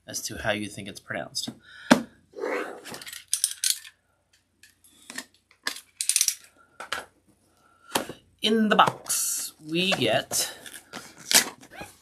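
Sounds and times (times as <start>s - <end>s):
packaging rustling and scraping: 9.8s - 12.0s.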